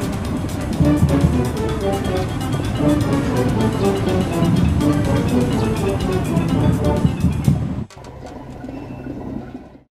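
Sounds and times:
steady background noise: 0.0s - 9.8s
low hum: 0.0s - 9.9s.

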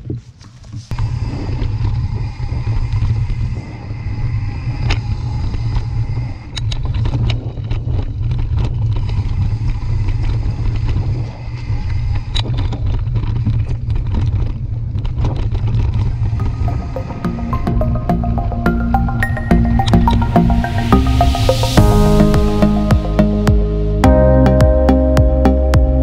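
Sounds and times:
bike rattling over bumps: 6.8s - 16.4s.

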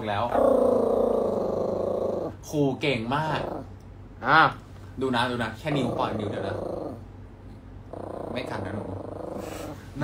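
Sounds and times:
dog growling: 0.0s - 4.4s, 5.6s - 7.1s, 7.8s - 9.9s.

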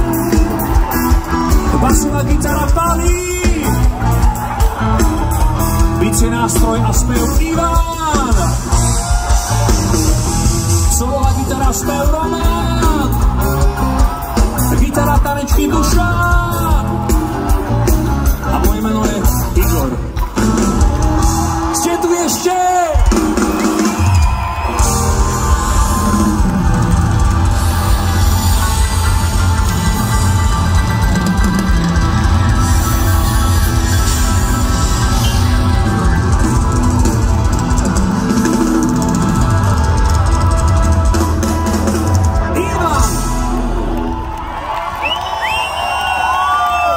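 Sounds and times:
live rock band playing: 0.0s - 46.9s.

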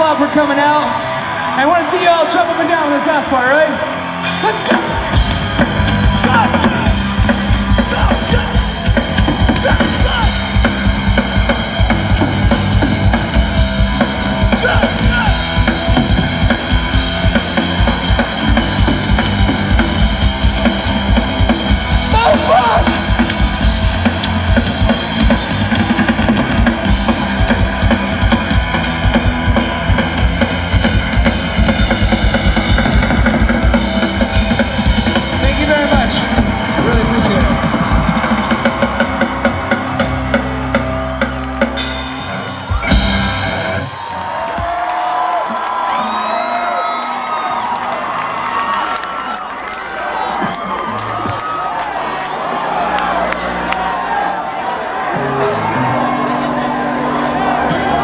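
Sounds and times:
shouted vocals: 0.0s - 10.7s, 14.4s - 16.0s, 21.9s - 23.3s, 42.2s - 58.0s
crowd cheering and shouting: 0.0s - 58.0s
electric guitars: 2.2s - 58.0s
bass guitar: 3.2s - 45.0s, 55.0s - 58.0s
fast pounding drum kit: 4.2s - 45.1s.

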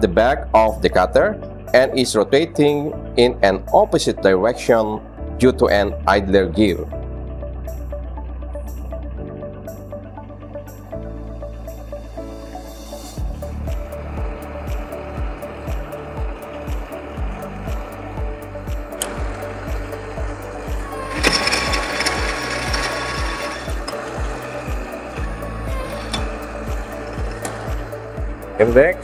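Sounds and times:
upbeat music with steady beat: 6.7s - 29.0s
milling machine cutting: 18.9s - 28.2s.

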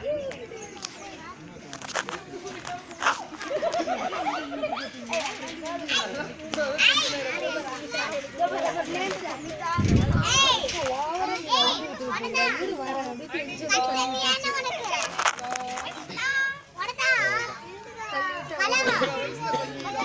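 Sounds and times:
children chattering and shouting: 0.0s - 20.0s.

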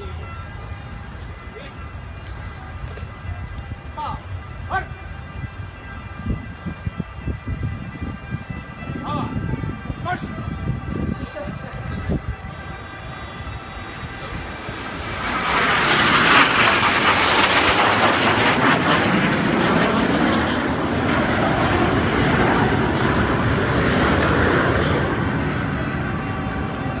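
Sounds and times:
jet aircraft flying overhead: 0.0s - 27.0s.

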